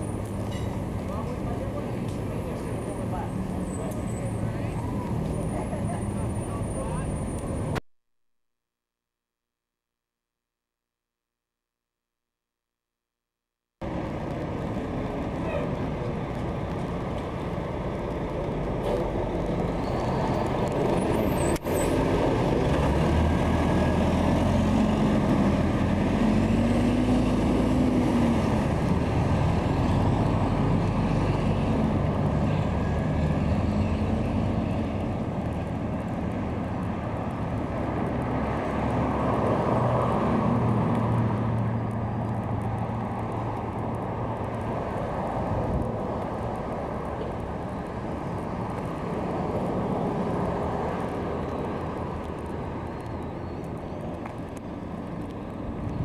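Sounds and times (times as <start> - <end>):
road noise: 0.0 - 7.8, 13.8 - 56.0
vehicle engine rumble: 0.0 - 7.8, 13.8 - 56.0.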